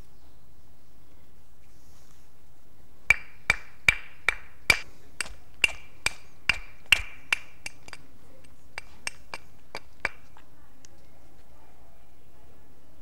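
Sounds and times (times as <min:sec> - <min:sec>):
stone strikes ringing: 0:03.1 - 0:08.0.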